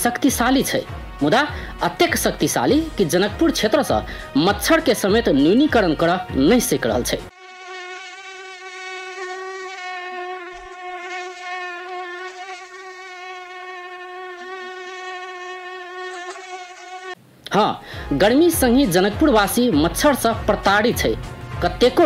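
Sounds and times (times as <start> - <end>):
mosquito whining: 7.3 - 17.2.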